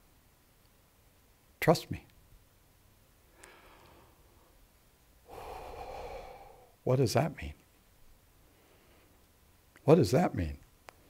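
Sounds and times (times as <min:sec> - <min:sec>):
man speaking: 0:01.6 - 0:02.1, 0:06.9 - 0:07.6, 0:09.8 - 0:10.6
man breathing deeply: 0:03.3 - 0:04.6, 0:05.2 - 0:06.8.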